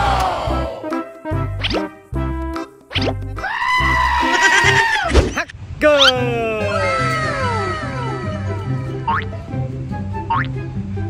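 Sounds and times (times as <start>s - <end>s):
high-pitched cry: 3.4s - 5.1s, 6.6s - 9.0s.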